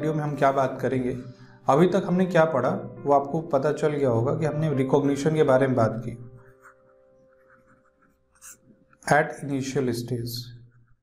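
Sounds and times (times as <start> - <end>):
person speaking: 0.0 - 10.5
stylus scratching on a screen: 6.4 - 9.1, 10.6 - 11.0.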